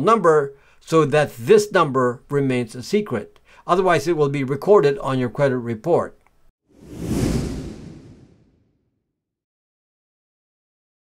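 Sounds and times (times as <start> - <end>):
whoosh transition effect: 6.7 - 8.8
low rumble: 6.8 - 8.7.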